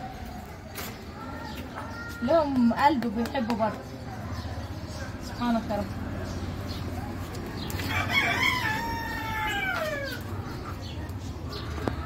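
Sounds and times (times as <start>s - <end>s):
rooster crowing: 7.9s - 10.2s.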